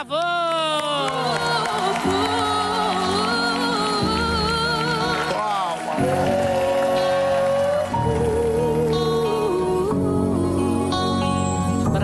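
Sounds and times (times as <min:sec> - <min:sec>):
instrumental backing track: 0:01.4 - 0:12.0.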